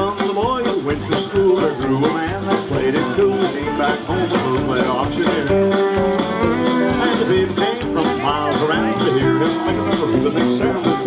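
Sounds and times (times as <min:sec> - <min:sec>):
country band playing: 0:00.0 - 0:11.0
steady drum beat: 0:00.0 - 0:11.0.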